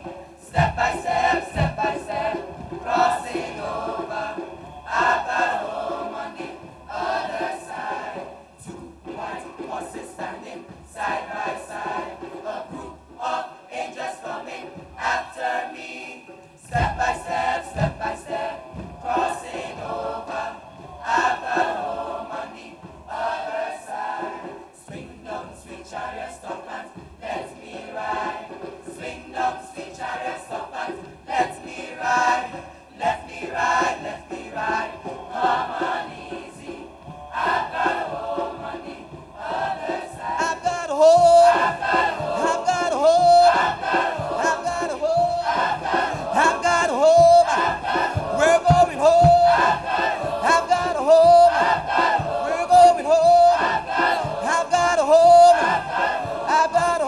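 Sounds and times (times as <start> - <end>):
male choir chanting: 0.0 - 57.0.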